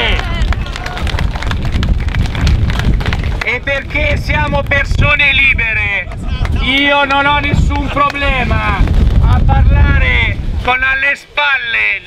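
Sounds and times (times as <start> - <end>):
wind buffeting microphone: 0.0 - 11.2.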